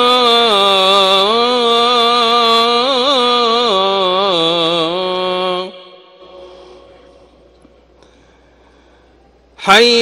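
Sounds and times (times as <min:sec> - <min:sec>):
call to prayer over loudspeakers: 0:00.0 - 0:07.9, 0:09.6 - 0:10.0.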